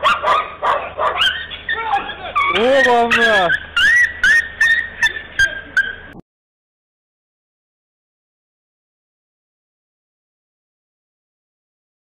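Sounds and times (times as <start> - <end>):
dog yelping: 0.0 - 6.2.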